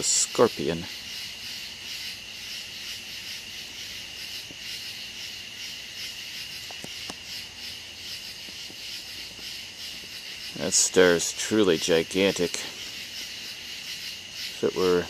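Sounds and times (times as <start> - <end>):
night insects chorus: 0.0 - 15.0.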